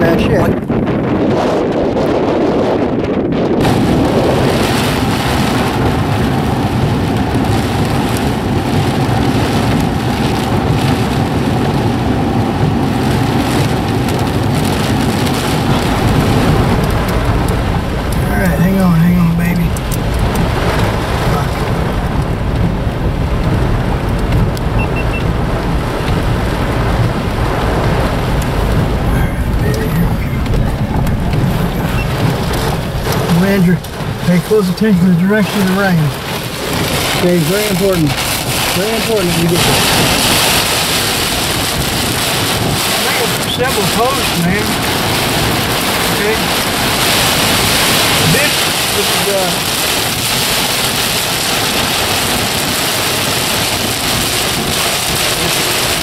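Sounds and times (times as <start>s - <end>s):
heavy rain on car windshield: 0.0s - 56.0s.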